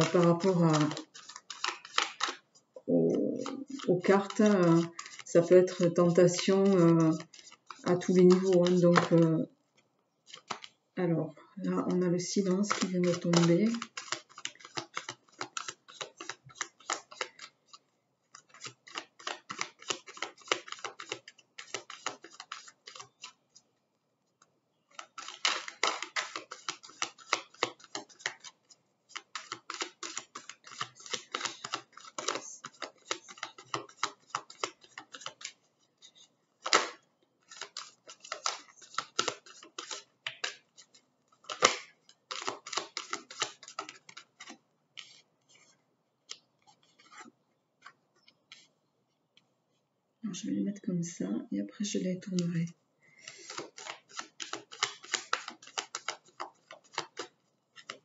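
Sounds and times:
cards being shuffled: 0.0s - 9.4s, 10.2s - 10.8s, 11.8s - 23.7s, 24.9s - 48.7s, 53.2s - 58.0s.

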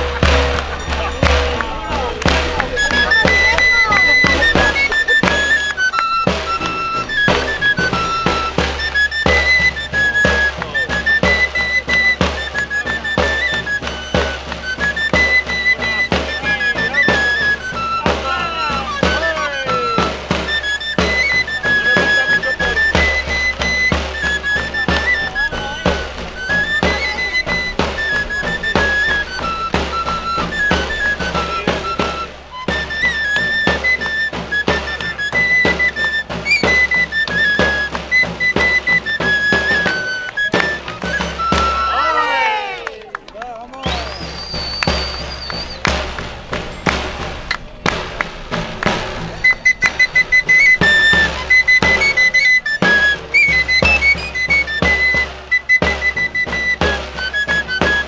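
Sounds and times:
high pipe melody: 0.0s - 42.8s, 43.8s - 58.0s
steady drumbeats: 0.0s - 58.0s.

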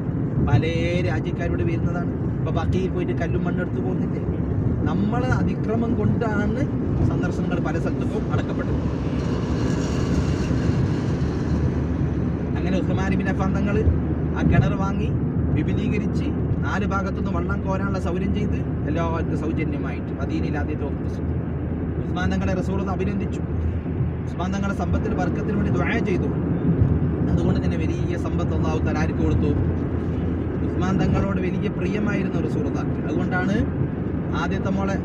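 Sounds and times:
car road and engine rumble: 0.0s - 35.0s
people talking: 0.5s - 4.3s, 4.9s - 8.8s, 12.6s - 21.2s, 22.2s - 23.4s, 24.3s - 26.3s, 27.3s - 29.6s, 30.7s - 33.6s, 34.3s - 35.0s.

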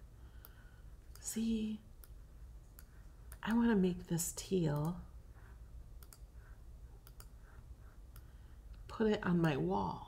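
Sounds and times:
computer mouse clicks: 0.4s - 1.4s, 2.0s - 3.6s, 4.6s - 5.0s, 6.0s - 9.6s.

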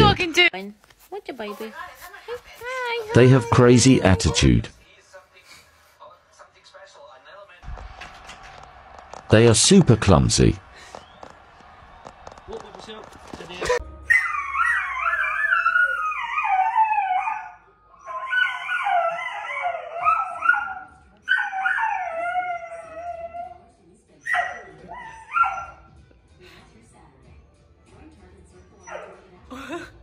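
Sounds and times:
dog howling and whining: 13.6s - 25.8s.

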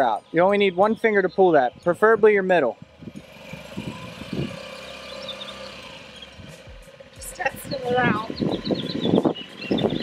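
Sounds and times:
scooter engine idling: 0.0s - 10.0s.

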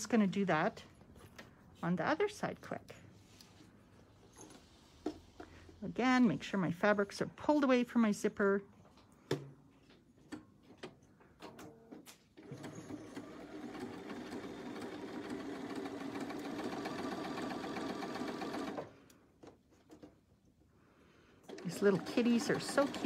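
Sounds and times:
sewing machine stitching: 12.4s - 19.0s, 21.5s - 23.0s.

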